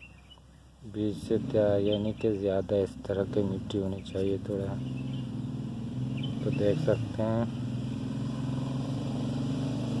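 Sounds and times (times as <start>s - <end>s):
engine running steadily: 0.1s - 10.0s.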